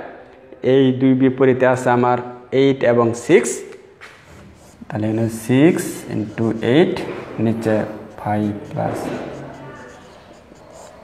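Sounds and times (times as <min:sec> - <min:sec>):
person speaking: 0:00.6 - 0:11.0
pen scratching on paper: 0:03.4 - 0:11.0.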